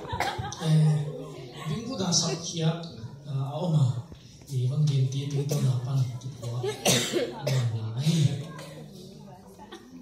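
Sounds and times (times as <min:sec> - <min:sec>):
short cough: 0:00.1 - 0:00.8, 0:06.4 - 0:08.9
man talking into a microphone: 0:00.5 - 0:08.7.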